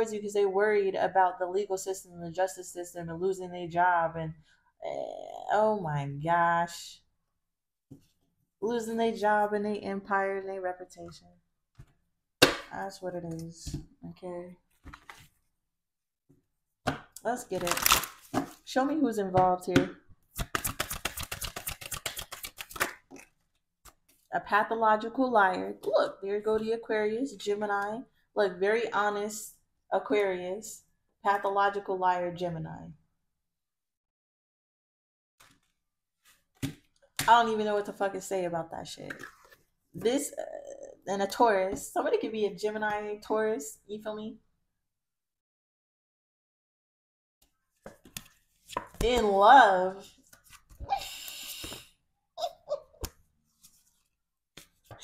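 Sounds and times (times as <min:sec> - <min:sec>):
cards tapping together: 0:20.4 - 0:23.2, 0:47.8 - 0:49.2
cards being shuffled: 0:20.4 - 0:24.3, 0:47.8 - 0:49.3, 0:50.2 - 0:51.8, 0:53.0 - 0:55.0.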